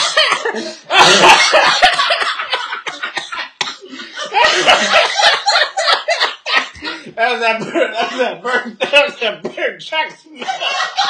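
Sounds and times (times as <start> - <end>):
laughter: 0.0 - 8.9, 10.4 - 11.0
person coughing loudly: 0.0 - 9.8, 10.4 - 11.0.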